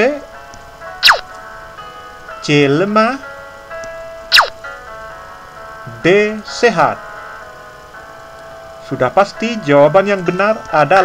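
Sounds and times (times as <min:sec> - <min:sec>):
soft electronic background music: 0:00.0 - 0:11.0.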